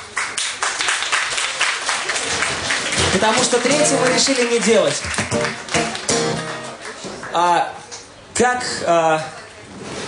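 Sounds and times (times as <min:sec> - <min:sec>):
acoustic guitar chords ringing: 0:03.0 - 0:04.3, 0:05.2 - 0:06.8.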